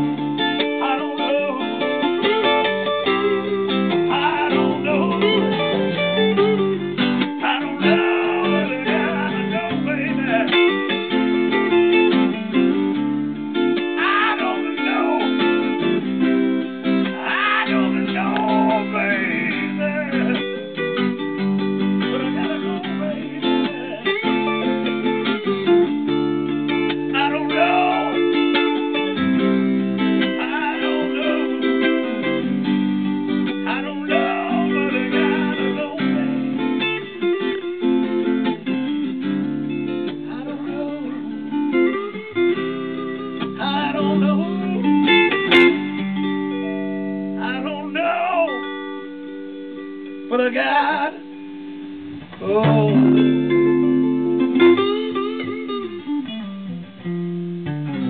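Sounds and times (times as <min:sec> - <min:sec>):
electric blues guitar: 0:00.0 - 0:58.0.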